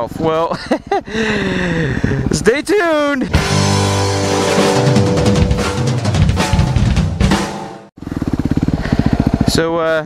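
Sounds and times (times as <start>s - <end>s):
intro music with drum beat: 3.3s - 7.9s
motorcycle engine running: 3.4s - 10.0s.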